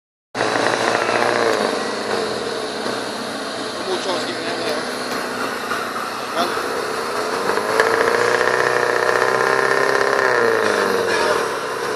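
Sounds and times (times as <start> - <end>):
off-road engine running hard: 0.4 - 11.9.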